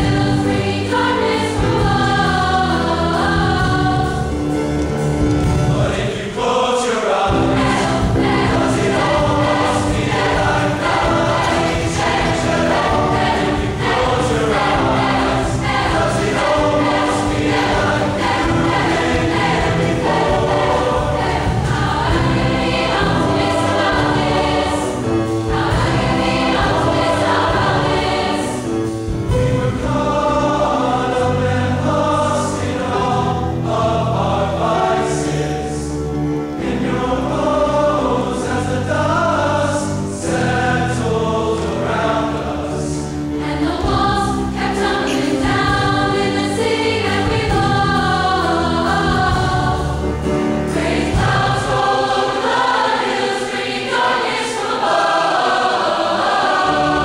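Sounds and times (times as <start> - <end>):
bass: 0.0 - 6.1, 7.3 - 52.6
drum kit: 0.0 - 6.5, 7.3 - 31.5, 43.3 - 57.0
choir singing: 0.0 - 57.0
piano: 0.0 - 57.0.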